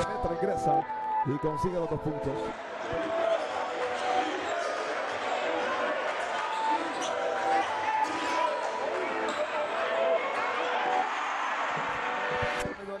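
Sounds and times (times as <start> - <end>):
murmur of crowd and voices: 2.1 - 13.0
sneaker squeaks: 6.2 - 9.6.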